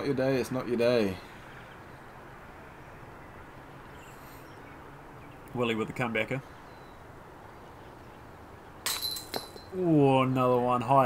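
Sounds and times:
disc striking metal basket: 8.8 - 9.7.

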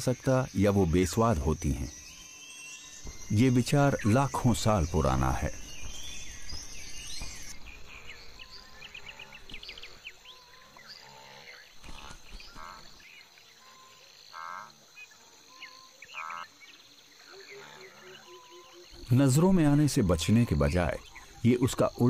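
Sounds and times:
insects and frogs chirping: 0.0 - 22.0.

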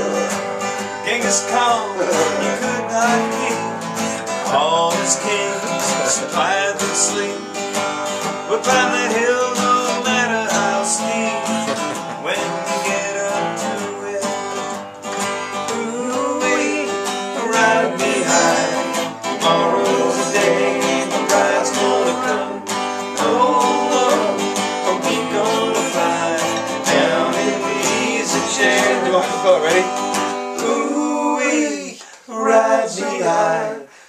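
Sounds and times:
acoustic guitars strumming: 0.0 - 34.0.

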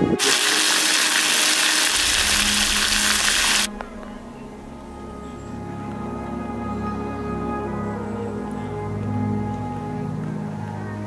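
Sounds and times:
loud steady hiss: 0.1 - 5.4.

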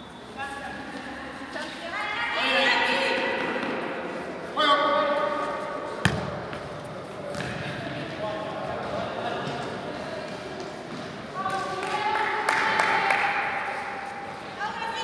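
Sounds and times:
ball kicked: 6.0 - 6.6.

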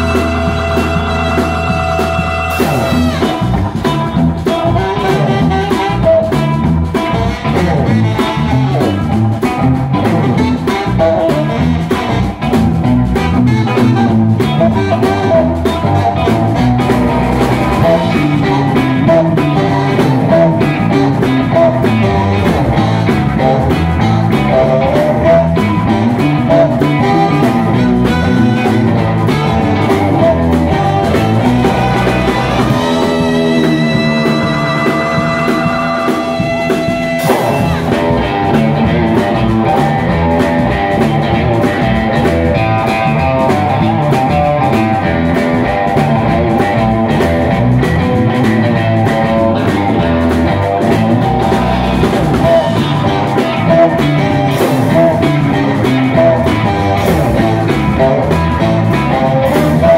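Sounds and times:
saxophone playing: 0.0 - 48.0, 48.7 - 59.9
rock and roll band playing: 0.0 - 59.9.

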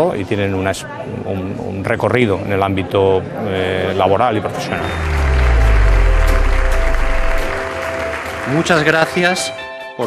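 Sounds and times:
deep bass note: 4.6 - 7.9
background music: 4.6 - 9.9
audience applauding: 4.8 - 9.1.

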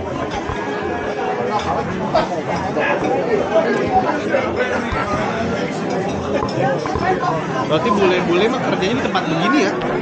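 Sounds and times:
hubbub of diners' voices: 0.0 - 10.0.

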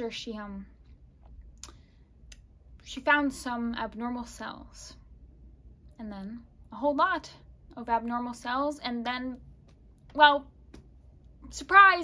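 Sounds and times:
woman speaking: 0.0 - 0.8, 2.8 - 5.0, 5.9 - 9.4, 10.1 - 10.6, 11.4 - 12.0
low steady hum: 0.0 - 12.0.

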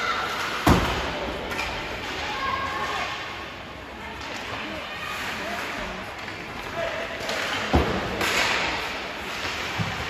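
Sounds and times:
voices in arena: 0.0 - 10.0
skates scraping ice: 4.1 - 10.0.

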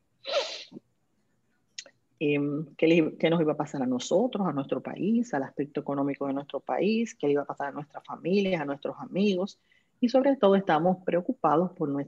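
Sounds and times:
woman's breathy voice burst: 0.3 - 0.8
faint breath: 9.6 - 10.0.

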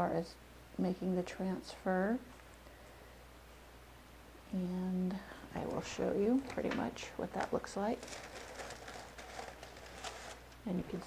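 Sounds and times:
paper rustling and crinkling: 5.6 - 11.0.

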